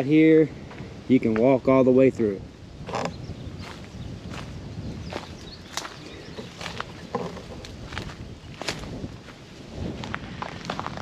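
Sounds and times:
footsteps on dry leaves and twigs: 2.9 - 11.0.

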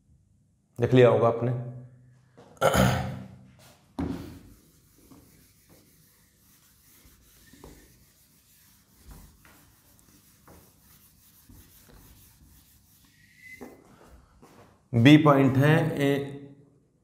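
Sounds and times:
duster rubbing whiteboard: 3.7 - 13.8.

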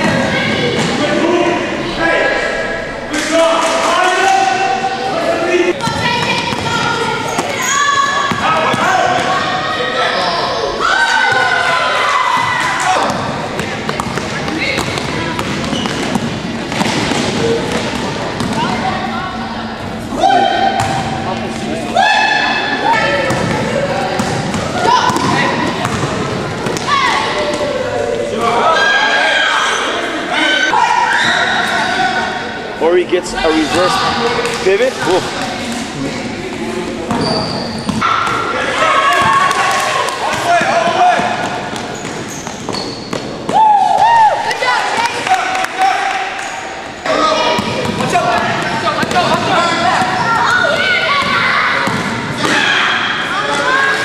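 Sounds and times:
people calling out and shouting: 0.0 - 13.6, 17.4 - 41.5.

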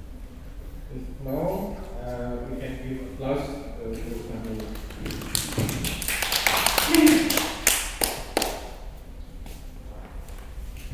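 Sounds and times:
person speaking: 0.9 - 5.7, 6.6 - 7.6
small audience applause: 4.2 - 8.8.

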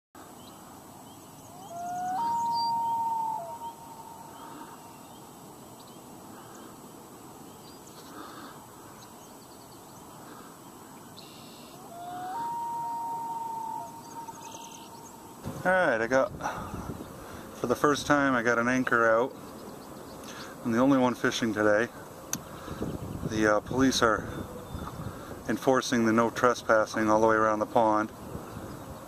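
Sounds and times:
faint high chirps: 11.0 - 15.4.

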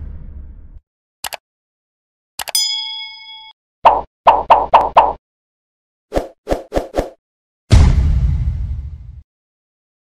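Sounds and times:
notification bell ding: 2.4 - 3.6.

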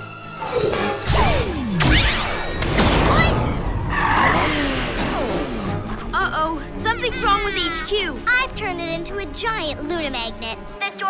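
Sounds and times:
cartoon action music: 0.2 - 11.0
crashing sound effects: 1.0 - 5.7.

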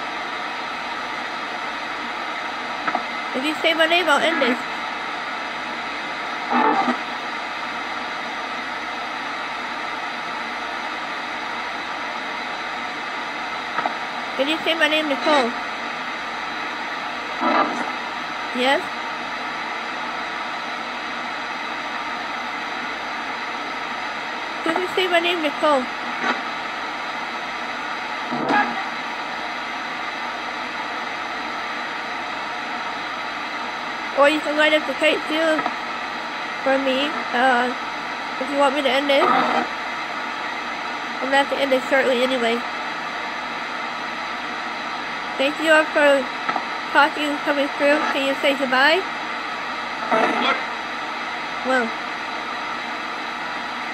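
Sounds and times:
radio static hiss: 0.0 - 53.9.

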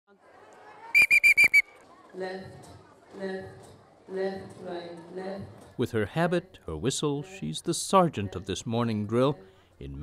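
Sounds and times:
plastic whistle blasts: 1.0 - 1.8
faint children's chatter: 1.6 - 5.7.

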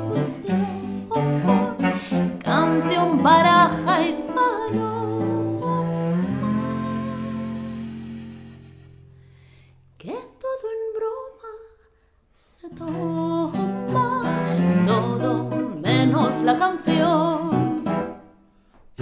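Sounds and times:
classical guitar: 0.0 - 9.3, 12.7 - 18.3.

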